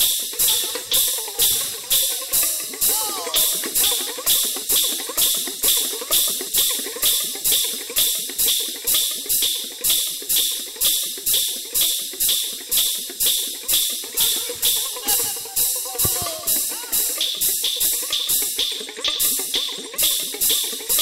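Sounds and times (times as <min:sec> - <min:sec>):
folk percussion beat: 0:00.0 - 0:21.0.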